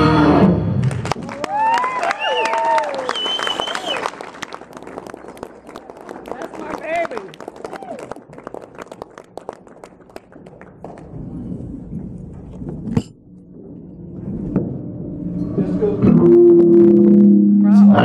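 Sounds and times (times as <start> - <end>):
audience applause: 0.9 - 11.2
person whooping: 1.4 - 4.0, 7.6 - 8.2.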